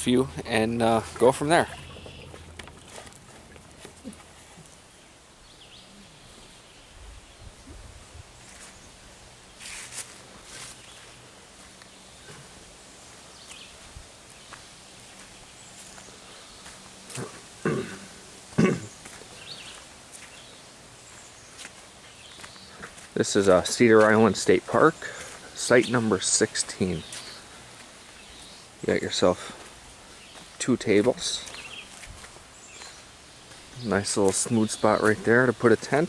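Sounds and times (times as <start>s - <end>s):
quiet outdoor ambience: 0.0s - 36.0s
footsteps on dirt trail: 9.6s - 17.9s, 18.5s - 36.0s.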